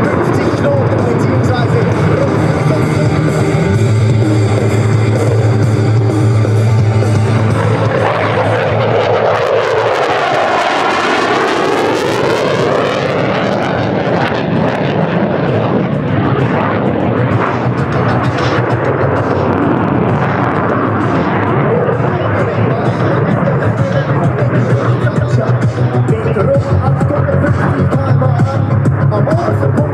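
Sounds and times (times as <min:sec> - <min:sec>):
loud jet noise: 0:00.0 - 0:29.9.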